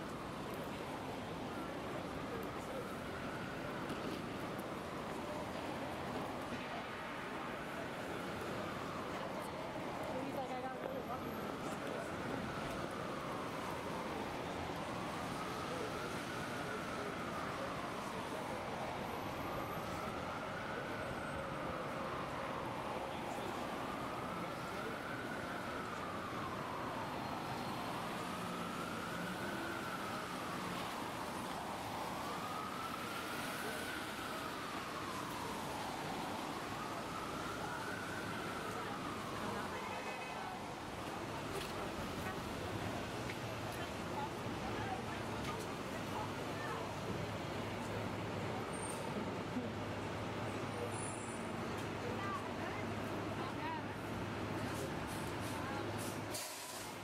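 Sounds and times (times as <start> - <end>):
city street traffic: 0.0 - 57.0
emergency vehicle siren wailing: 0.0 - 57.0
voices of passers-by: 0.0 - 57.0
brief hiss: 56.0 - 57.0.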